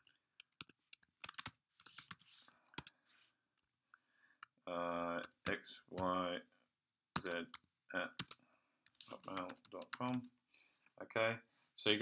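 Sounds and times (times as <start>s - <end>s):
person speaking: 4.7s - 6.4s, 7.2s - 10.4s, 11.1s - 12.0s.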